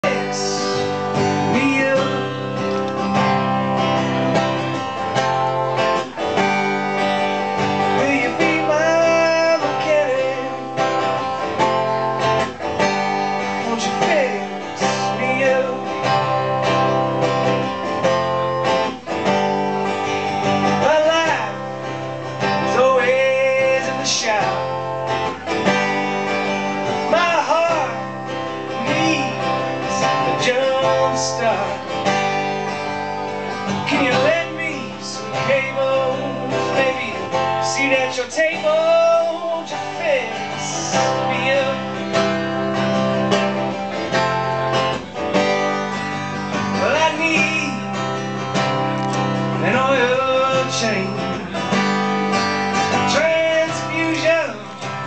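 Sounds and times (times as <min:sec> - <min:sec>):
person singing: 0:00.0 - 0:03.5, 0:07.7 - 0:11.4, 0:13.5 - 0:16.6, 0:26.7 - 0:32.0, 0:33.5 - 0:42.4, 0:46.6 - 0:48.2, 0:49.1 - 0:52.0, 0:52.8 - 0:55.0
acoustic guitar strumming: 0:00.0 - 0:55.0.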